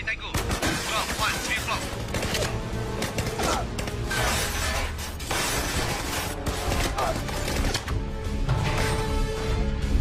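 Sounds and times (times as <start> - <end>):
low action music: 0.0 - 10.0.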